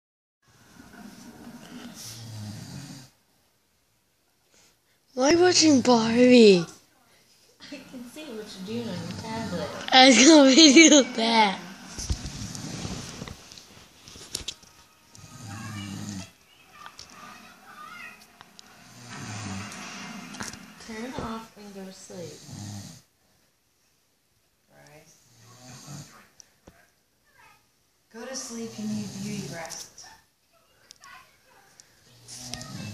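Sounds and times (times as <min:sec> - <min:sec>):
man snoring: 0:00.8 - 0:03.2, 0:15.2 - 0:16.4, 0:18.8 - 0:19.8, 0:22.2 - 0:23.1, 0:25.2 - 0:26.2.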